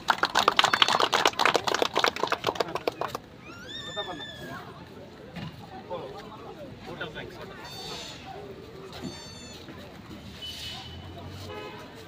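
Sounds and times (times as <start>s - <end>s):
people clapping: 0.0s - 3.3s.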